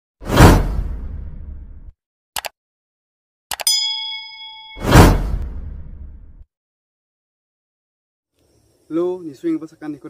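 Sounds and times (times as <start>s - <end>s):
whoosh with low tail: 4.8s - 6.4s.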